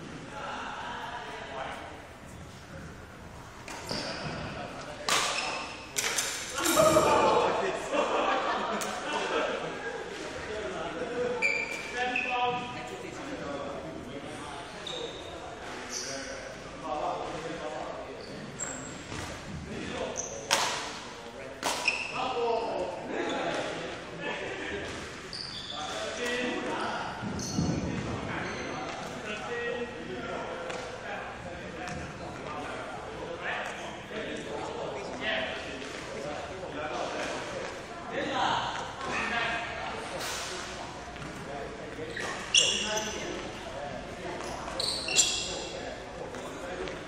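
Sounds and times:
voices talking in echoing hall: 0.0s - 47.0s
sports shoes squeaking: 2.2s - 7.3s, 11.3s - 13.4s, 14.3s - 16.8s, 17.9s - 20.7s, 21.6s - 22.4s, 24.8s - 29.8s, 40.0s - 47.0s.

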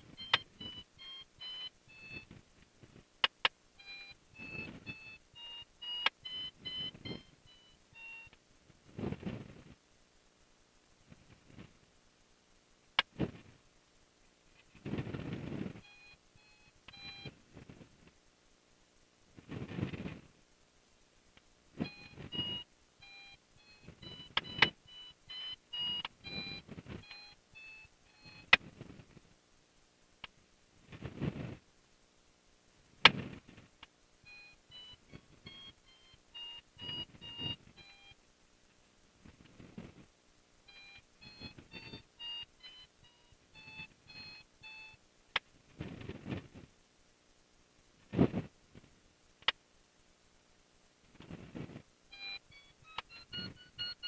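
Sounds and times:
sharp clicks: 0.0s - 8.4s, 23.8s - 29.0s, 49.4s - 49.6s, 52.1s - 54.0s
short electronic beeps: 0.1s - 2.3s, 3.8s - 8.3s, 15.8s - 17.3s, 21.8s - 28.5s, 34.3s - 38.2s, 40.7s - 45.0s, 52.1s - 54.0s.

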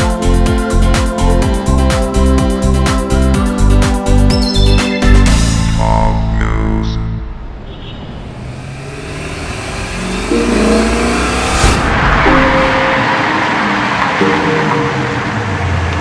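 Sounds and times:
sports car engine and tyres: 7.3s - 16.0s
sustained music notes: 8.4s - 16.0s.

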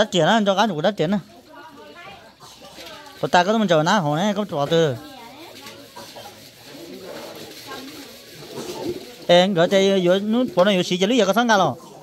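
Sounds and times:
water running from a hose: 0.1s - 11.8s.

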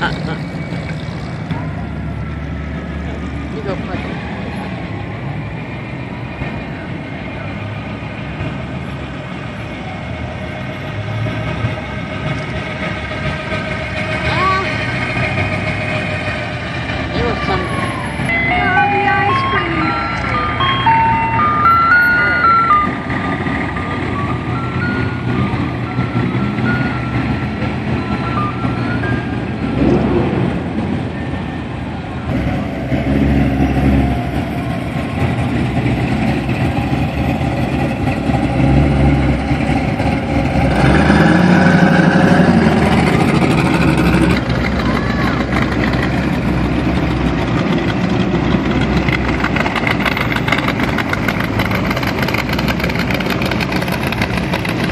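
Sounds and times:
old car engines running: 0.0s - 54.9s
people talking: 14.2s - 14.9s, 17.1s - 17.9s, 18.6s - 20.4s, 44.6s - 46.1s.

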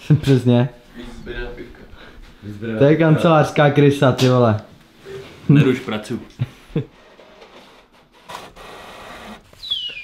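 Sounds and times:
falling whistling tone: 9.6s - 10.0s.

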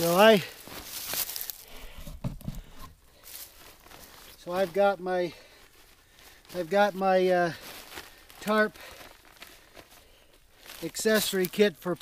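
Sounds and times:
scuffs on dry leaves: 0.0s - 1.9s, 3.1s - 12.0s
nylon poncho rustling: 0.0s - 11.6s.

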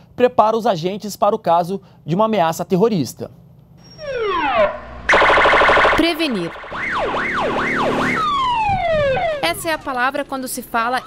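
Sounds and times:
electronic police siren: 3.8s - 10.1s.

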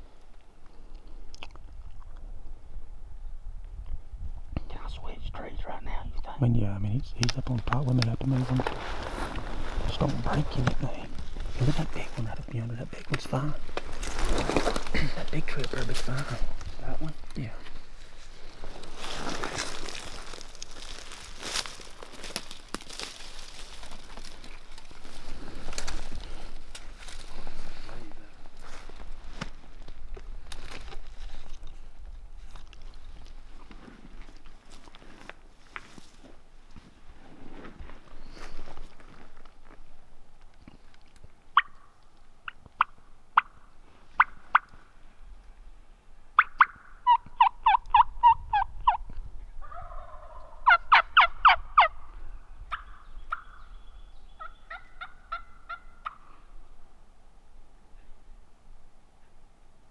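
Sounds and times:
rustling through brush: 7.2s - 45.5s
turkey yelps: 41.6s - 41.9s, 46.4s - 49.0s, 49.6s - 52.0s, 52.7s - 53.6s, 54.4s - 56.3s
turkey gobbles: 41.6s - 43.6s, 46.4s - 52.0s, 54.4s - 56.3s.

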